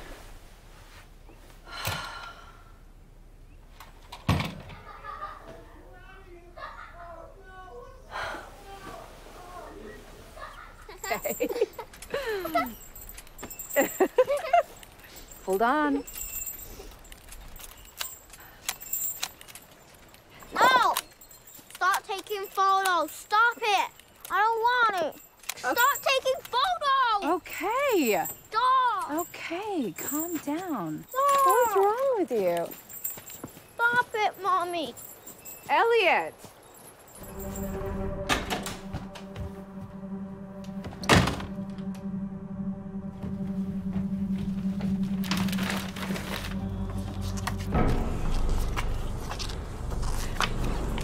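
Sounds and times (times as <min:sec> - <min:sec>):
metal swing chains jangling: 0:10.8 - 0:37.8
low film score drone: 0:37.2 - 0:51.0
loud thud: 0:46.8 - 0:51.0.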